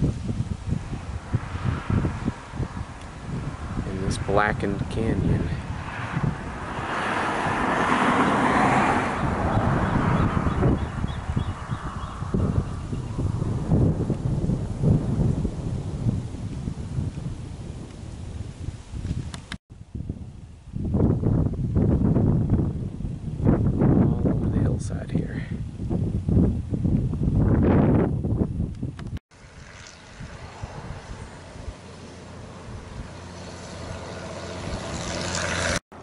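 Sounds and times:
wind gusting on microphone: 0.0 - 36.0
vehicle passing: 0.8 - 13.8, 29.3 - 36.0.

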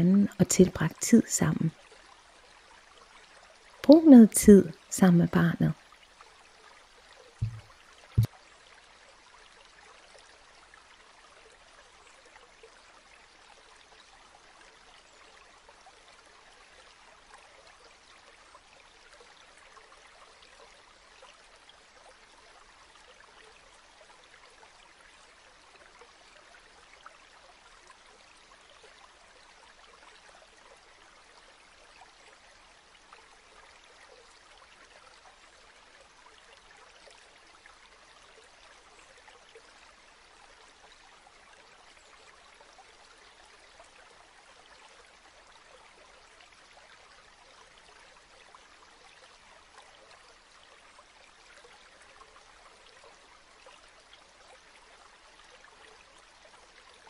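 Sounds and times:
small stream trickling: 0.0 - 57.0.

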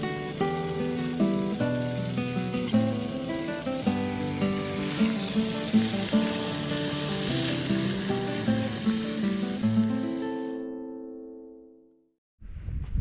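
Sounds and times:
bacon sizzling in a frying pan: 0.0 - 10.6
acoustic guitar music: 0.0 - 12.1.

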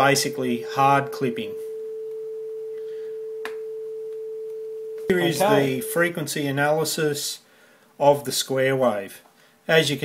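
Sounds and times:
steady test tone: 0.0 - 4.4, 5.0 - 6.2.

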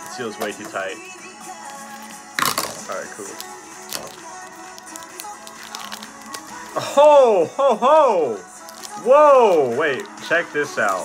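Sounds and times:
background music: 0.0 - 11.0
plastic sleeve tearing open: 1.6 - 6.8, 8.5 - 10.2.

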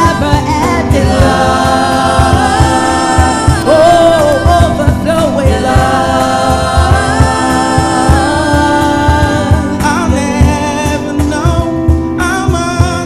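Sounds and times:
voices singing together: 0.0 - 11.5
electric keyboard: 0.0 - 13.0
steady low beat: 0.0 - 13.0.

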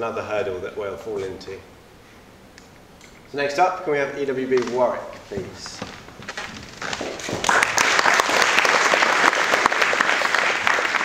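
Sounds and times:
audience applauding: 6.8 - 11.0.

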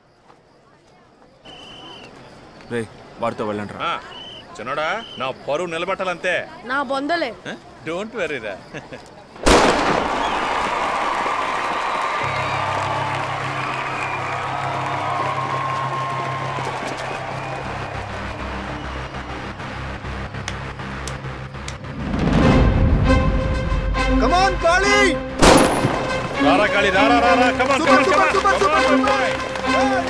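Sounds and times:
background noise: 0.0 - 23.2
pistol shot: 9.4 - 10.7, 25.4 - 26.2
dramatic film score music: 12.2 - 30.0.

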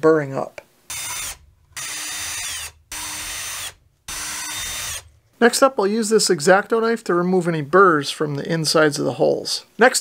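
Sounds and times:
cordless drill boring plastic: 0.9 - 5.1.

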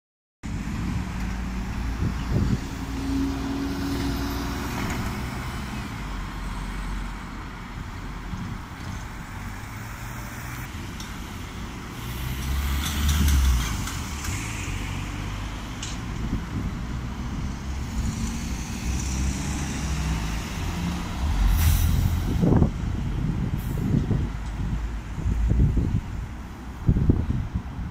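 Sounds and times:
pickup truck passing: 0.5 - 25.9
bus engine running: 0.5 - 27.9.

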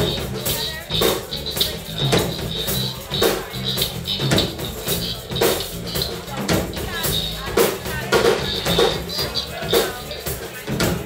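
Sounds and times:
funk band playing: 0.0 - 11.0.

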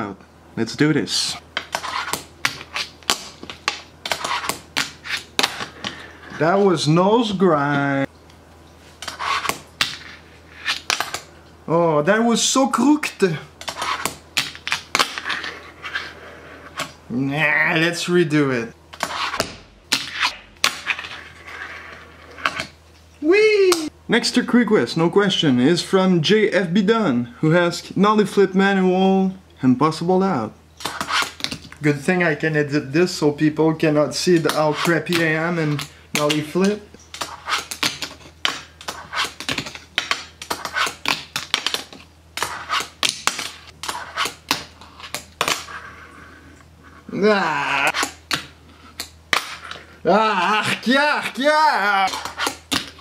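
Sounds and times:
fingerboard scraping grind: 15.1 - 16.8, 20.1 - 22.7, 43.9 - 46.0.

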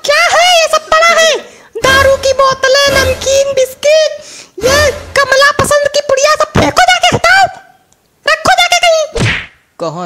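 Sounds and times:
high-pitched cartoon voice: 0.0 - 9.2.

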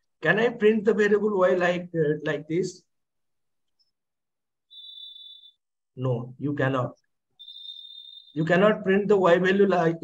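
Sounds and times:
high-pitched electronic beep: 4.7 - 5.6, 7.4 - 8.5.

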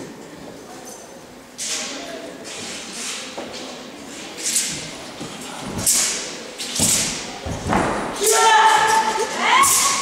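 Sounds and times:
feet stamping on mat: 6.8 - 8.2.

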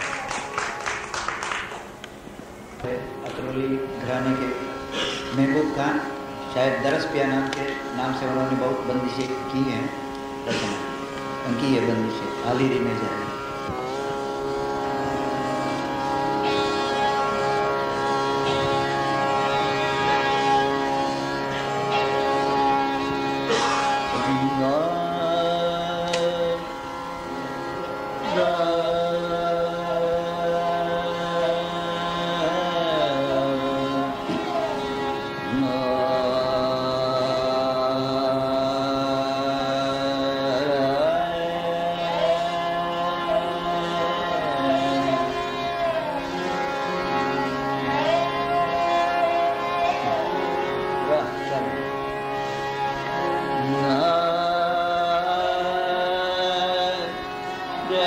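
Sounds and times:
classical singing voice: 2.7 - 58.0
long held note over drone: 2.8 - 58.0.

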